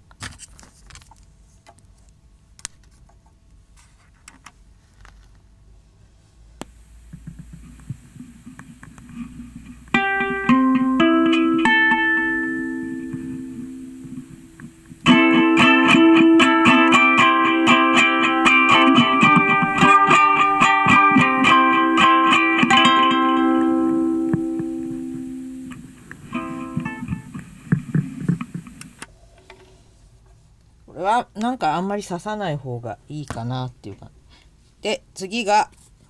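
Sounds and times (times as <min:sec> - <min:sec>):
ukulele handling thumps: 0:07.1 - 0:12.0, 0:13.0 - 0:13.4, 0:18.0 - 0:23.2, 0:25.7 - 0:28.8
ukulele chord ringing: 0:09.9 - 0:14.4, 0:15.0 - 0:27.2.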